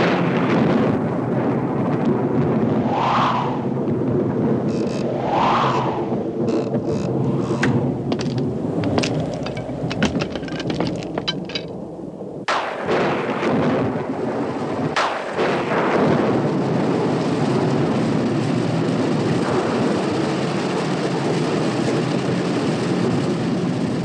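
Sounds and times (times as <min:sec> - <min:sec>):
thunderclaps rumbling: 0:00.0 - 0:24.0
heavy rain: 0:03.5 - 0:24.0.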